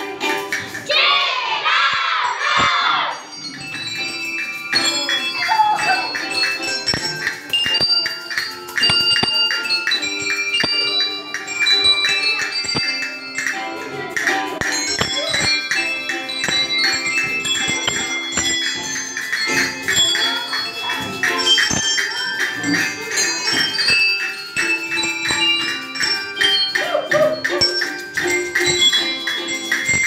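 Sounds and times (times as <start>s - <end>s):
handbells playing a melody: 0.0s - 30.0s.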